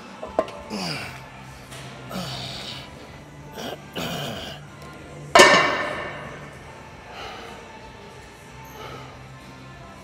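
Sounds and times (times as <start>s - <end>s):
gym weight metallic clank: 5.4s - 6.5s.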